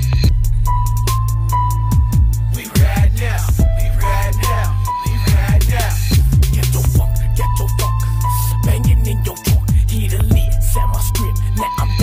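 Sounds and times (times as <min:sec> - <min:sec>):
deep bass line: 0:00.0 - 0:12.0
hip hop track: 0:00.0 - 0:12.0
kick drums: 0:05.3 - 0:07.2, 0:08.7 - 0:10.6.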